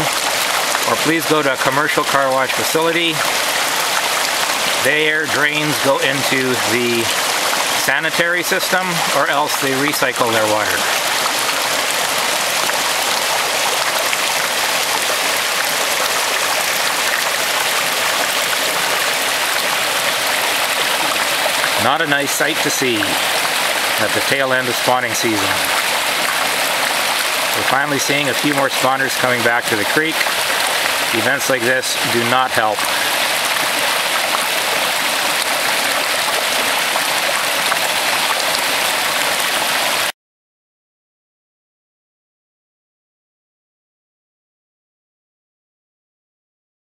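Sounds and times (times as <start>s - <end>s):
water rushing over rocks: 0.0s - 40.1s.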